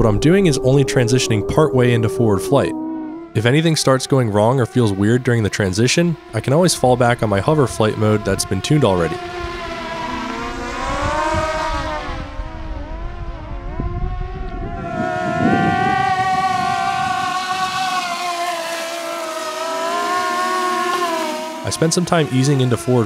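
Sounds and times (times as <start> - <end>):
low rumble: 0.0 - 3.7
drone motors whining: 0.0 - 23.0.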